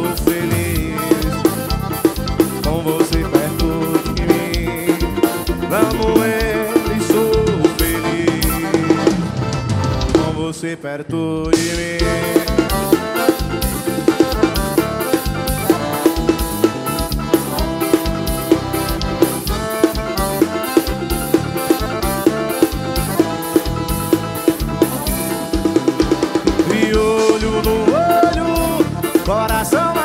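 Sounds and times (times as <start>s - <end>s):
accordion melody: 0.0s - 10.6s, 11.5s - 30.0s
drum kit beat: 0.0s - 10.6s, 11.4s - 30.0s.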